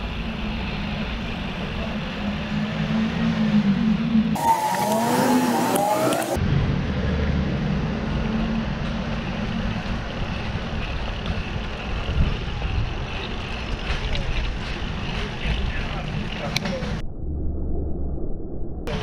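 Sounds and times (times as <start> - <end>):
road and traffic rumble: 0.0 - 17.0
wind noise on microphone: 6.4 - 17.0.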